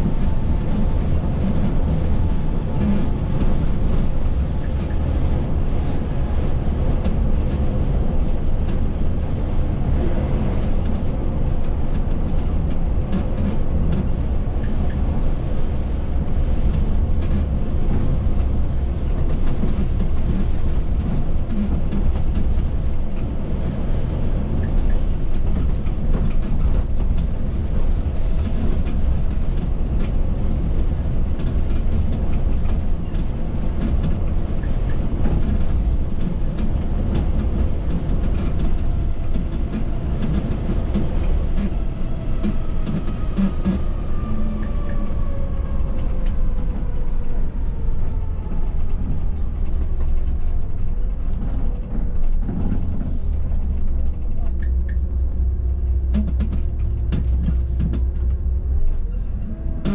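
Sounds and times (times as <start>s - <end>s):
engine and road rumble: 0.0s - 59.9s
rattles and clicks in cab: 0.0s - 59.9s.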